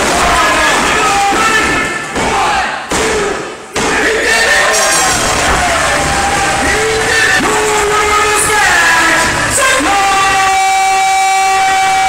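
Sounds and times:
crowd yelling: 0:00.0 - 0:12.0.

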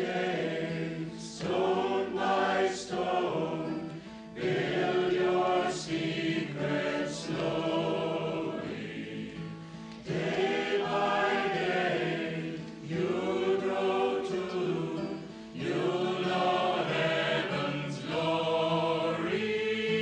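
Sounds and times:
choir singing a slow chant: 0:00.0 - 0:20.0.

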